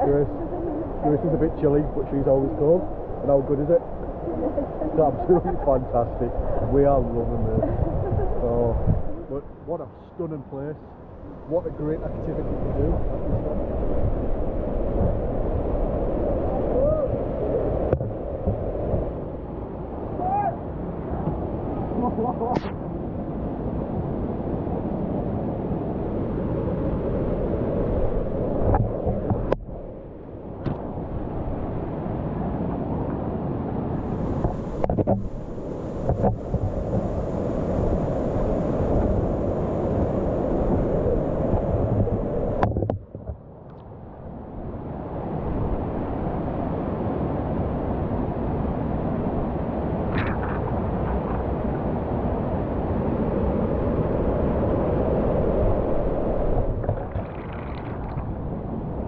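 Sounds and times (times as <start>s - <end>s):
waterfall and rushing water: 0.0s - 42.9s.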